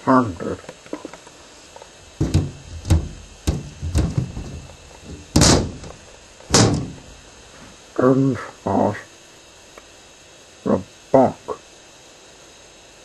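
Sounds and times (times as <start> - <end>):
heavy bangs: 2.1 - 7.5
sharp knocks: 2.2 - 7.3.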